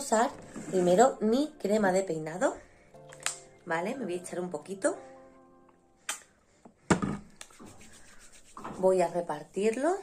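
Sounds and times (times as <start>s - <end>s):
hands rubbing together: 7.3s - 9.5s.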